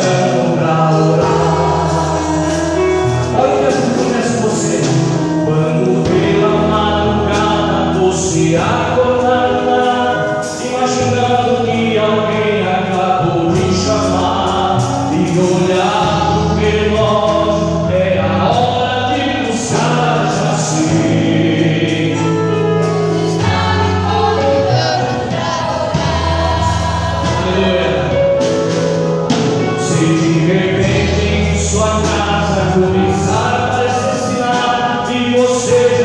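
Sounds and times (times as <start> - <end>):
voices singing along: 0.0 - 28.8
instrumental accompaniment: 0.0 - 36.0
man singing into microphone: 0.0 - 36.0.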